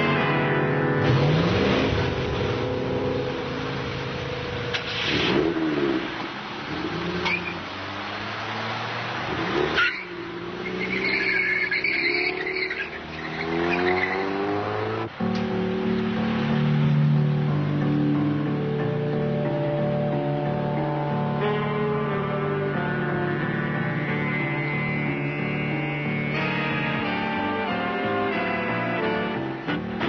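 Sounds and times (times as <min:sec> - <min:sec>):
car engines accelerating: 0:00.0 - 0:30.0.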